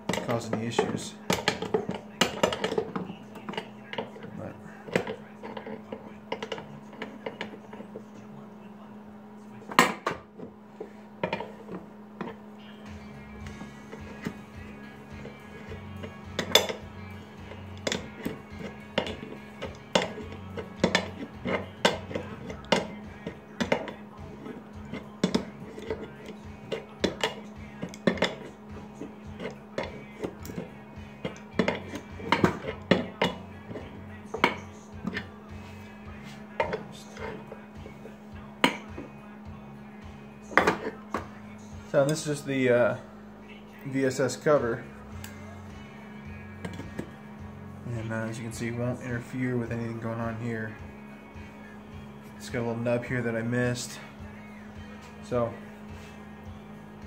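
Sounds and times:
steady low hum: 0:00.0 - 0:57.0
wrench clinking on metal fittings: 0:15.2 - 0:16.8.

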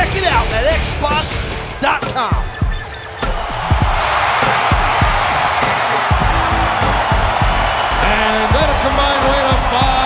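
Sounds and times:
music with heavy drum beat: 0:00.0 - 0:10.0
crowd cheering: 0:02.0 - 0:10.0.

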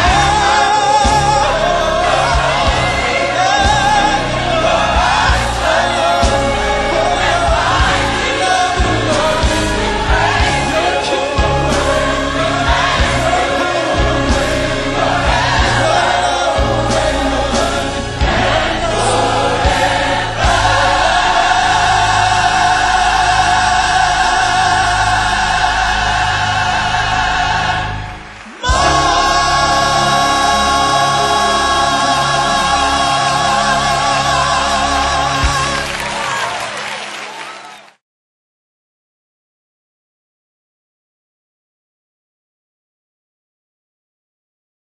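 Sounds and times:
band accompaniment: 0:00.0 - 0:37.6
choir singing gospel: 0:00.0 - 0:37.8
applause: 0:28.0 - 0:28.9, 0:35.4 - 0:38.0.

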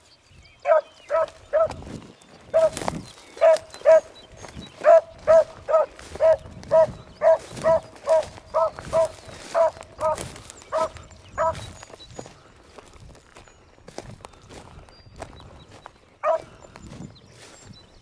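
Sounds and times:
dog baying: 0:16.2 - 0:16.5.

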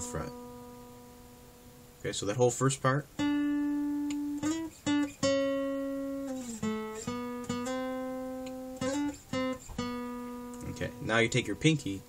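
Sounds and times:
acoustic guitar single-note solo: 0:00.0 - 0:12.0.

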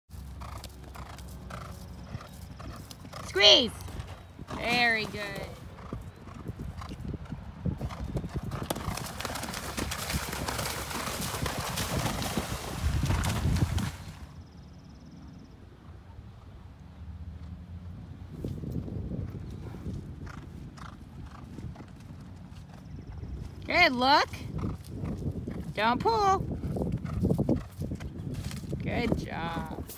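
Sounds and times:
horse hoofbeats on grass: 0:00.1 - 0:14.3, 0:18.4 - 0:29.9.

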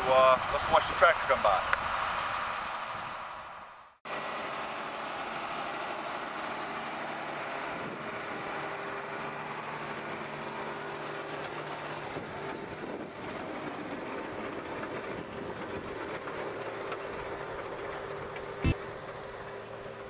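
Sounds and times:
tractor engine running: 0:04.1 - 0:20.0.

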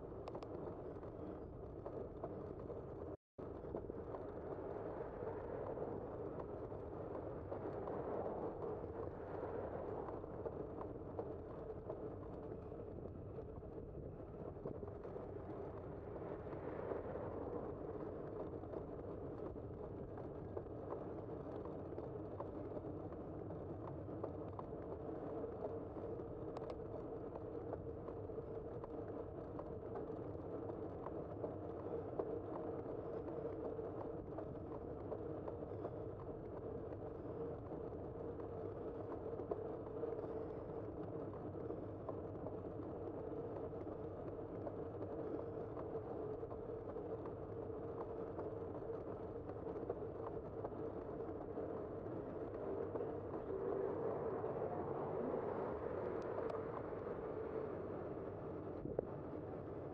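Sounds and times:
bicycle tyres and drivetrain hum: 0:00.1 - 0:59.9.

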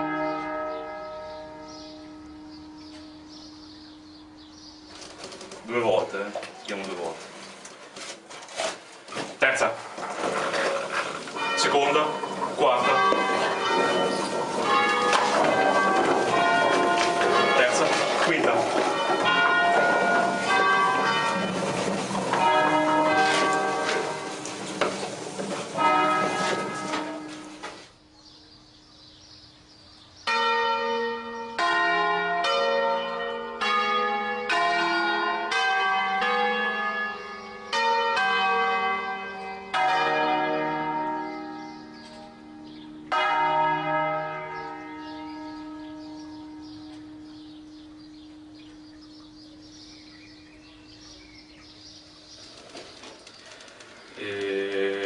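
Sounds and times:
church bells ringing: 0:00.0 - 0:07.3, 0:09.4 - 0:29.3, 0:30.1 - 0:52.4.

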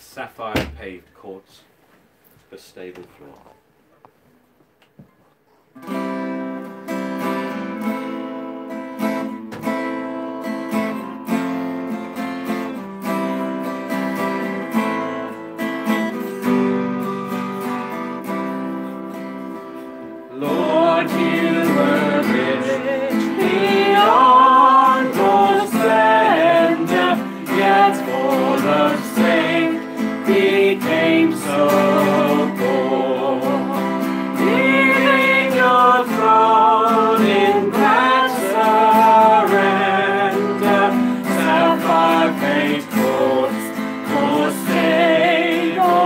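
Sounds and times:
acoustic guitar strumming: 0:05.8 - 0:46.0
people singing a hymn: 0:20.3 - 0:46.0.

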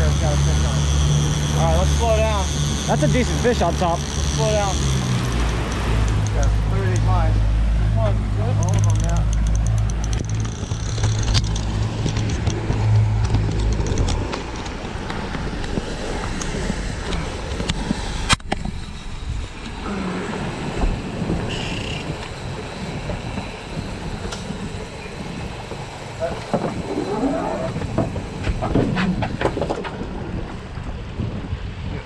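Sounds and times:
boat engine and wake rushing: 0:00.0 - 0:32.0
heavy low rumble: 0:00.0 - 0:32.0.

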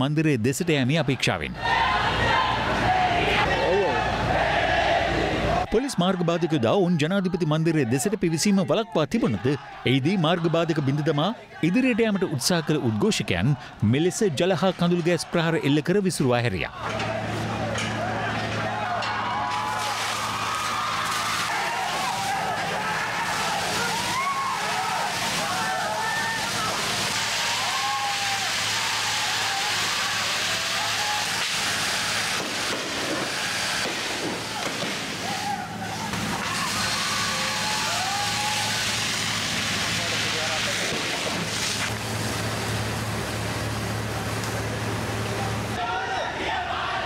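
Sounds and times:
loud outdoor din: 0:00.0 - 0:47.0
crowd shouting: 0:01.5 - 0:15.8, 0:16.7 - 0:39.4, 0:45.4 - 0:47.0
water jet hissing: 0:19.6 - 0:45.8.

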